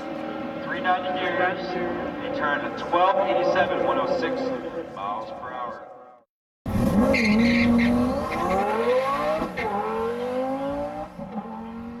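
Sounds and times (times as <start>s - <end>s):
car engine accelerating: 6.7s - 12.0s.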